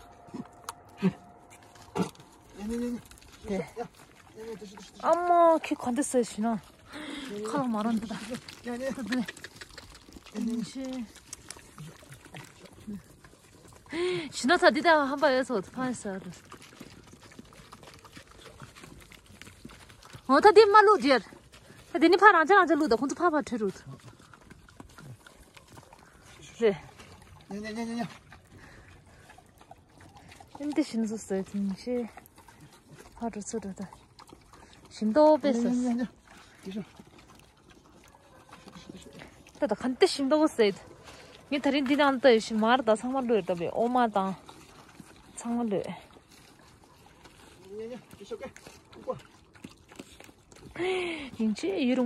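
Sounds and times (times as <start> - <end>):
dogs eating: 0.0 - 52.0
low dog sounds: 0.0 - 52.0.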